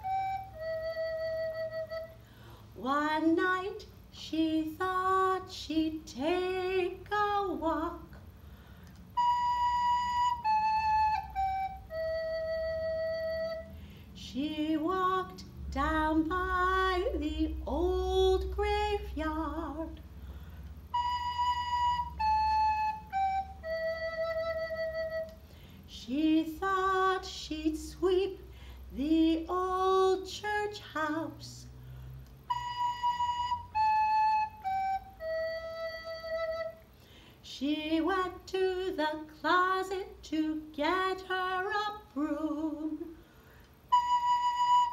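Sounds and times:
recorder playing descending notes: 0:00.0 - 0:02.2, 0:09.1 - 0:13.7, 0:20.9 - 0:25.4, 0:32.4 - 0:36.9, 0:43.9 - 0:44.9.

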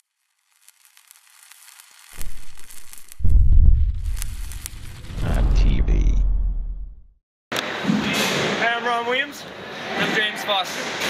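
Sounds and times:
crackling sizzling hiss: 0:00.0 - 0:05.4
deep low rumble: 0:02.2 - 0:07.2.

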